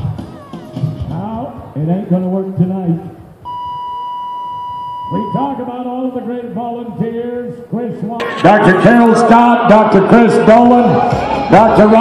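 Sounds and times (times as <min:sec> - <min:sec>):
steady electronic beep tone: 0:03.5 - 0:05.6, 0:08.2 - 0:09.6.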